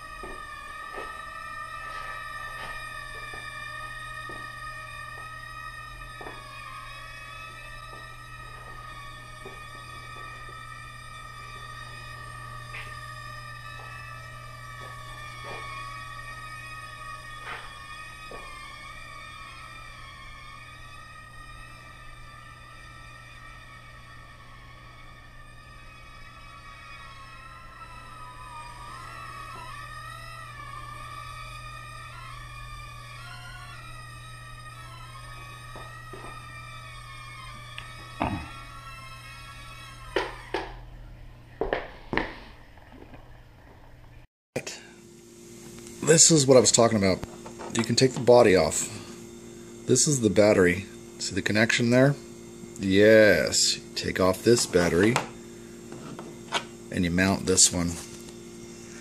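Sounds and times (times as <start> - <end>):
quadcopter motors whining: 0.0 - 43.8, 44.6 - 59.0
drone knocking on floor: 40.1 - 40.8.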